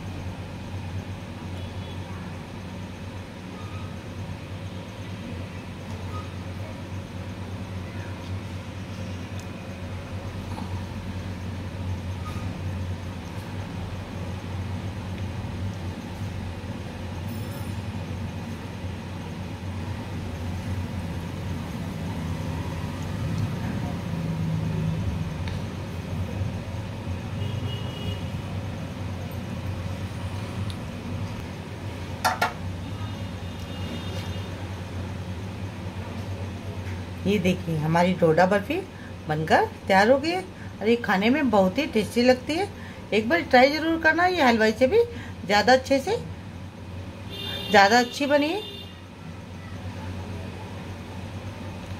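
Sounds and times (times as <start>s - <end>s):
low background hum: 0.0s - 51.9s.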